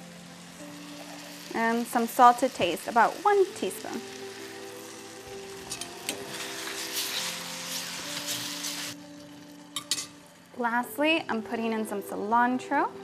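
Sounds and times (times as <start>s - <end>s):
vegetables sizzling in oil: 0.0s - 12.8s
soft background music: 0.0s - 13.0s.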